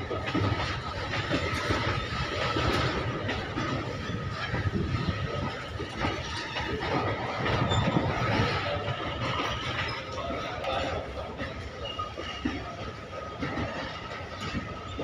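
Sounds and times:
train wheels rumbling on rail: 0.0s - 15.0s
wheels clattering over rail joints: 0.0s - 15.0s.

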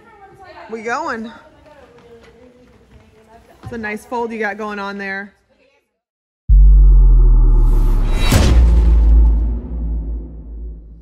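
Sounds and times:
deep low boom: 6.5s - 11.0s.

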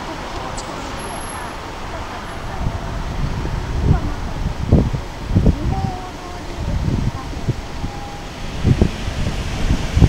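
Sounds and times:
street traffic noise: 0.0s - 10.0s
wind gusts on microphone: 0.0s - 10.0s.

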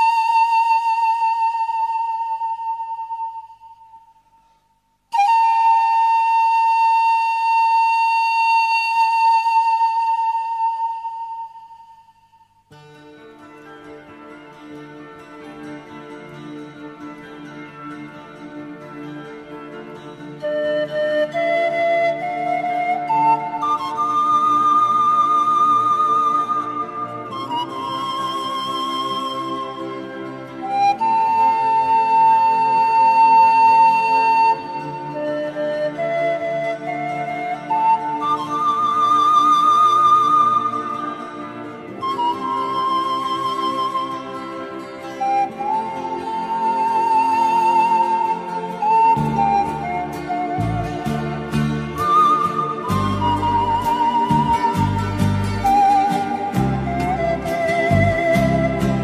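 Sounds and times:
flute melody: 0.0s - 59.0s.

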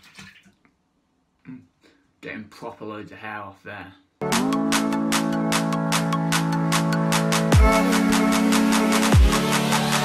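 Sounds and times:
faint water splashing: 0.0s - 0.8s
short low vocal sound: 1.4s - 1.9s.

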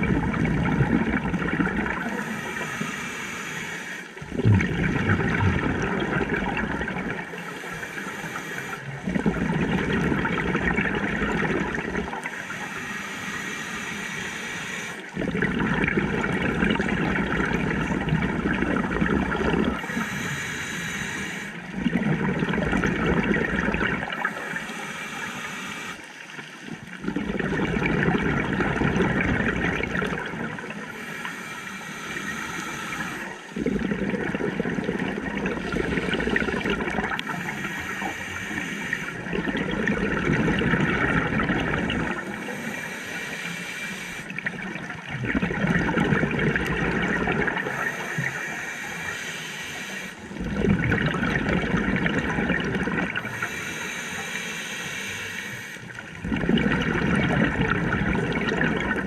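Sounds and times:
exhaled bubbles rushing: 0.0s - 2.7s, 4.2s - 8.0s, 8.6s - 12.3s, 15.0s - 20.1s, 21.6s - 24.6s, 26.6s - 31.0s, 33.0s - 43.4s, 44.0s - 48.6s, 50.2s - 53.5s, 55.8s - 59.0s
regulator inhale hiss: 2.0s - 4.2s, 7.3s - 9.1s, 12.2s - 15.2s, 19.7s - 21.7s, 24.1s - 26.3s, 30.7s - 33.7s, 35.6s - 39.2s, 41.1s - 44.4s, 47.4s - 50.4s, 53.1s - 56.1s.

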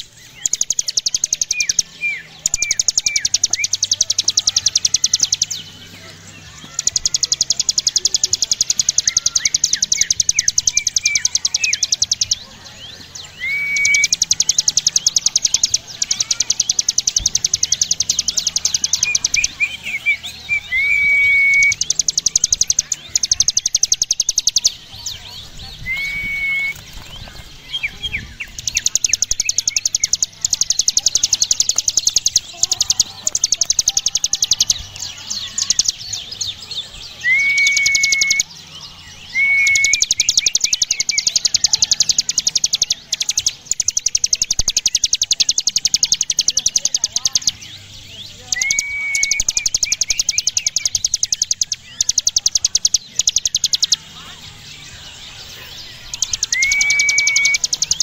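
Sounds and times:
bird chirps and whistle: 0.0s - 58.0s.

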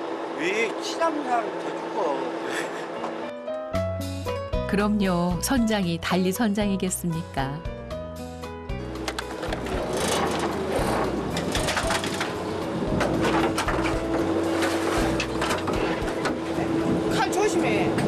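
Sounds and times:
background music: 2.4s - 18.0s
boat engine and water wash: 8.8s - 18.0s
gear clattering on deck: 9.0s - 16.4s.

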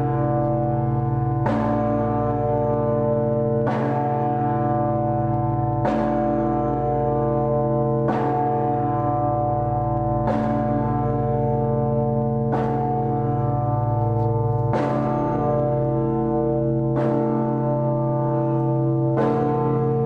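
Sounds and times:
large bronze bell tolling: 0.0s - 20.0s.

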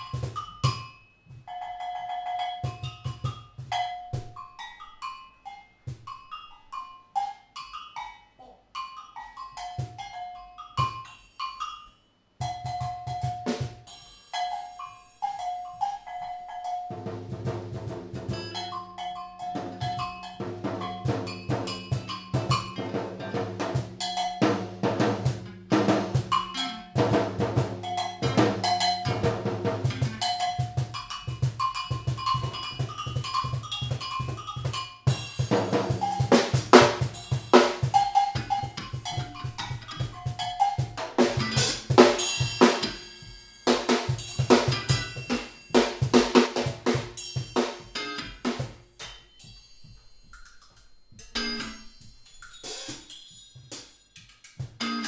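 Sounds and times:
drum kit playing: 0.0s - 0.8s, 12.4s - 55.0s.

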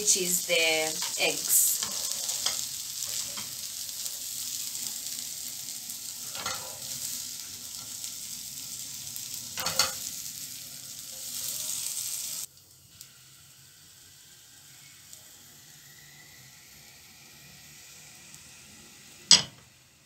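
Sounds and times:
food sizzling in frying pan: 0.0s - 20.0s.

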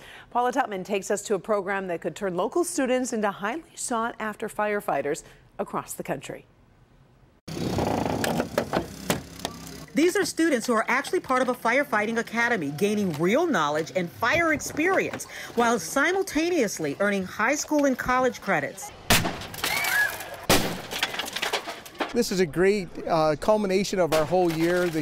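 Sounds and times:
sharp cracks: 19.1s - 22.2s.

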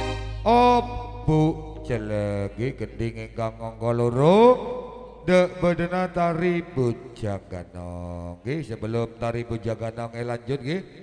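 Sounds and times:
man chanting: 0.4s - 11.0s.

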